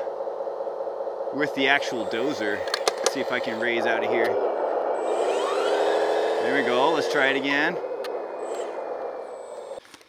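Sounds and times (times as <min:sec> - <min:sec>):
faint high whine: 0:00.0 - 0:09.9
electric motor whirring: 0:01.6 - 0:09.8.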